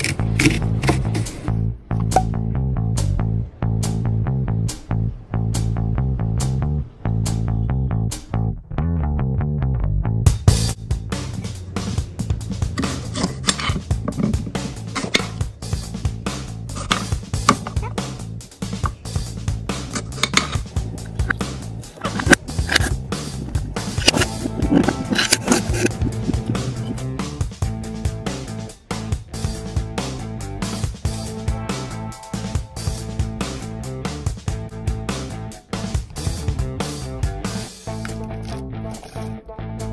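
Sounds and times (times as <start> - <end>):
background music with bass and guitar: 0.0 - 39.9.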